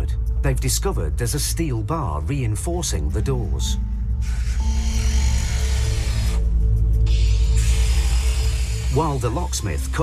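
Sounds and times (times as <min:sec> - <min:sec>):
background music with bass: 0:00.0 - 0:10.0
power tool cutting steel bar: 0:04.2 - 0:06.4, 0:07.1 - 0:09.6.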